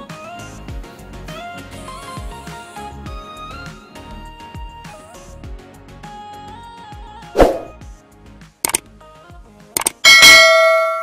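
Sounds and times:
background music: 0.0s - 11.0s
short whoosh: 7.4s - 7.8s
mouse clicks: 9.8s - 10.0s
notification bell ding: 10.1s - 11.0s.

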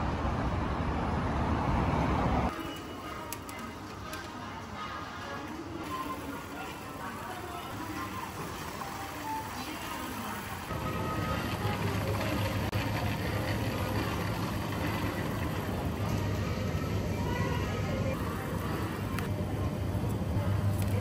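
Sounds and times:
shopping cart wheels rumbling: 2.5s - 19.2s.

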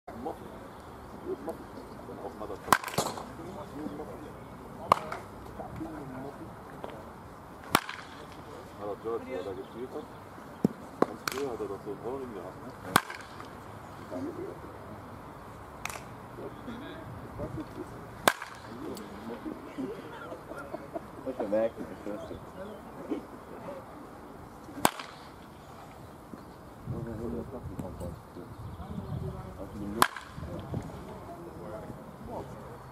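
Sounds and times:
baseball bat cracking balls: 2.6s - 3.4s, 4.8s - 5.6s, 7.6s - 8.4s, 10.6s - 11.6s, 12.7s - 13.6s, 15.8s - 16.2s, 18.2s - 19.1s, 24.7s - 25.6s, 29.9s - 30.7s.

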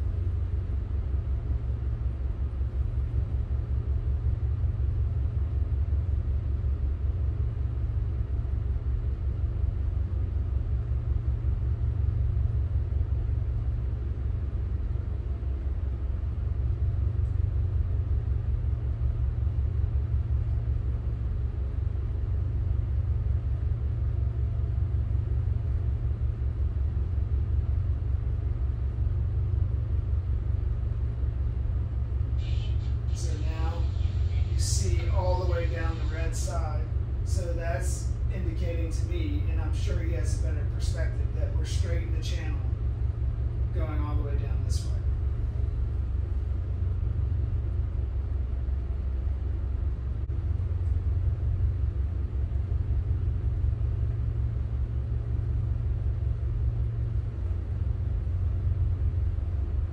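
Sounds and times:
diesel engines throbbing: 31.8s - 47.2s.

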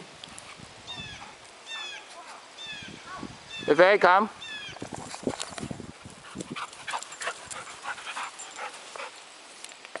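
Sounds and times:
puppy panting: 6.0s - 9.3s.

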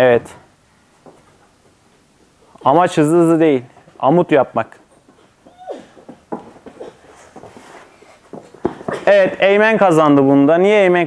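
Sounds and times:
hands and feet tapping on carpet: 4.8s - 9.4s.

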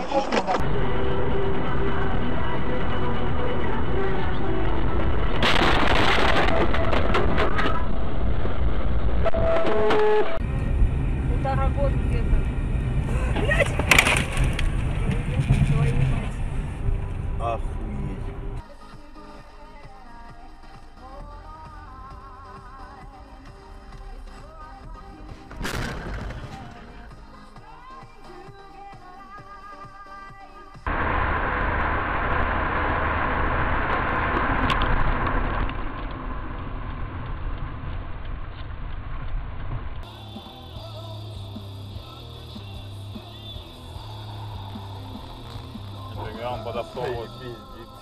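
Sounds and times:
road and engine noise: 0.0s - 48.0s
sudden loud bang: 5.4s - 8.0s, 25.4s - 27.0s
background music with a beat: 18.6s - 30.9s, 40.0s - 46.6s.

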